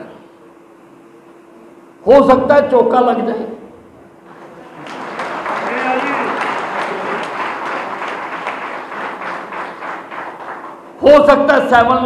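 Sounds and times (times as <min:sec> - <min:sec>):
audience applauding: 0:04.3 - 0:11.0.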